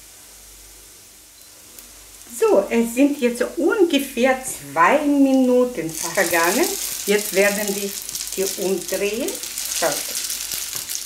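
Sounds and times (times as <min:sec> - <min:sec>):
oil sizzling in a pan: 0:00.0 - 0:11.0.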